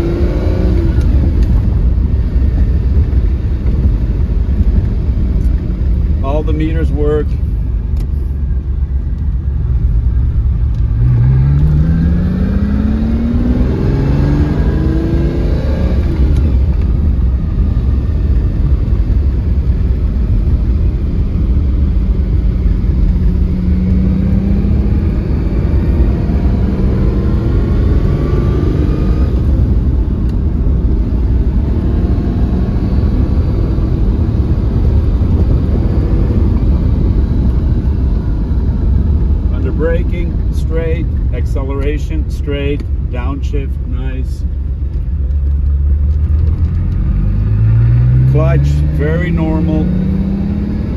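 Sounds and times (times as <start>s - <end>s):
car engine accelerating: 0.0s - 50.9s
low cabin rumble: 0.7s - 11.9s, 16.0s - 23.9s, 29.2s - 49.8s.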